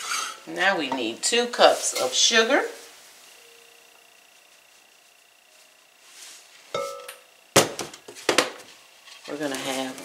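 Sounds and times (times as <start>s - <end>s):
glass clinking: 6.7s - 7.2s.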